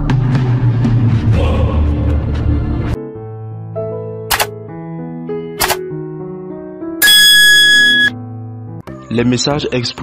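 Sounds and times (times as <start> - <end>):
bright ringing chime: 7.0 - 8.1.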